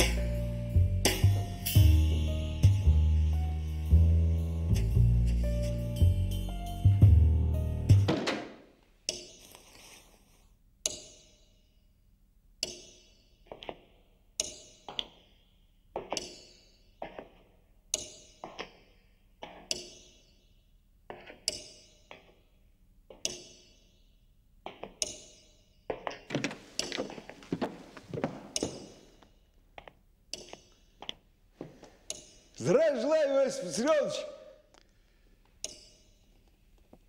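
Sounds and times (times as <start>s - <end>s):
footsteps on hard floor: 26.0s - 29.3s, 31.0s - 32.0s.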